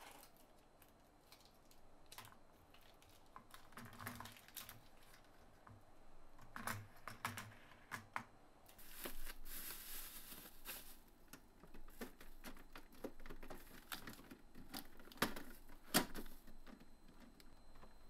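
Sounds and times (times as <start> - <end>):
rustle: 8.7 - 11.0.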